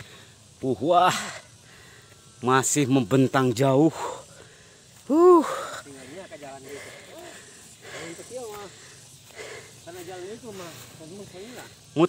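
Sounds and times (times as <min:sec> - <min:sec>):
man breathing hard: 0:00.0 - 0:02.4, 0:03.9 - 0:10.5
man huffing and muttering: 0:05.1 - 0:08.4.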